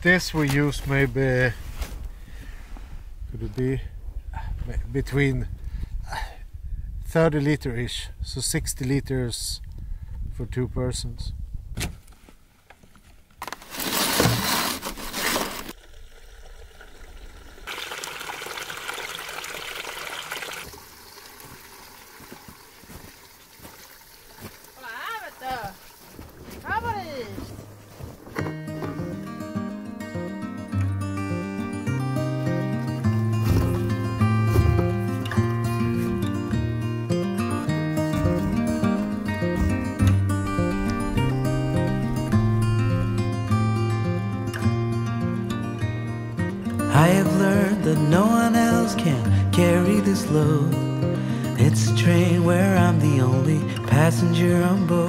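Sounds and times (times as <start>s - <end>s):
fuel pouring into tank: 13.7s - 26.6s
guitar music: 27.6s - 55.0s.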